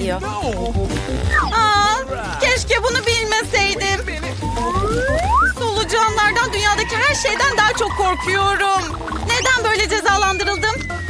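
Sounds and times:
background music with low bass: 0.0 - 11.0
rising whistle glide: 4.4 - 5.6, 6.4 - 11.0.

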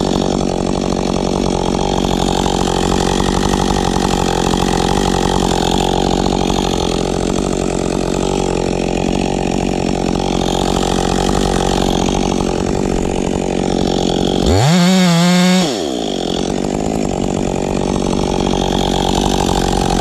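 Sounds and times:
chainsaw cutting wood: 0.0 - 20.0.

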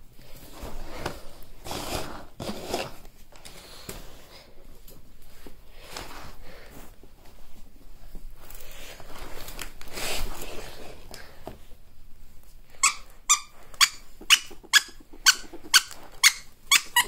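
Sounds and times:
ferret squeaks: 12.8 - 17.0.

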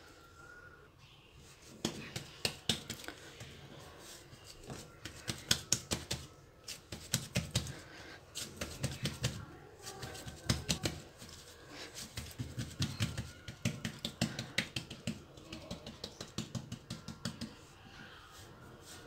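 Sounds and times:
hands patting bread dough: 1.6 - 3.6, 4.5 - 17.7.

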